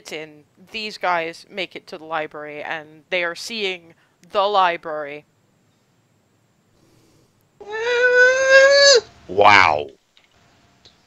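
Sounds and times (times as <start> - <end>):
person exclaiming ooh in awe: 7.6 - 9.8.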